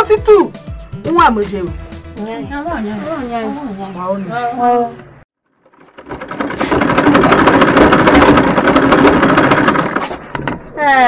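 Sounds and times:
sewing machine stitching: 0:05.6 - 0:10.6.

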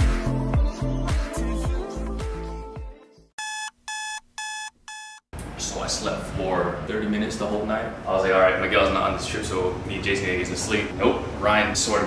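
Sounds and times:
electronic alarm beeping: 0:03.4 - 0:05.3
man speaking: 0:05.6 - 0:12.0.

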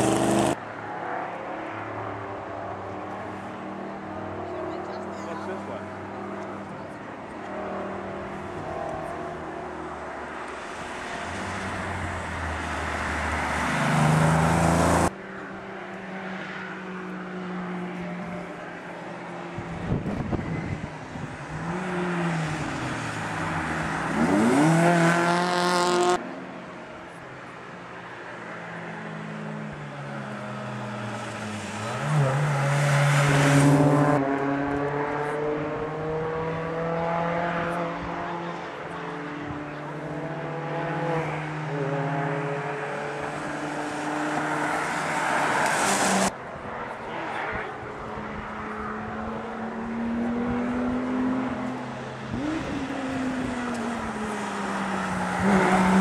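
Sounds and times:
rally cars passing at speed: 0:00.0 - 0:56.0.

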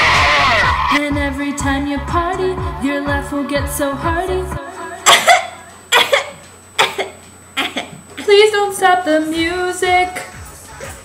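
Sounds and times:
person coughing: 0:05.0 - 0:08.0.

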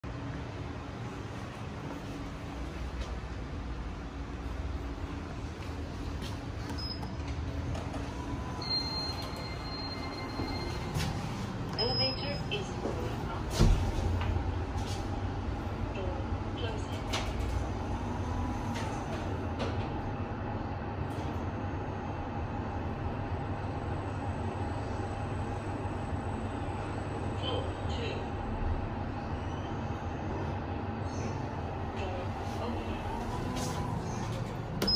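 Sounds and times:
lift humming and motor whine: 0:00.0 - 0:34.9.

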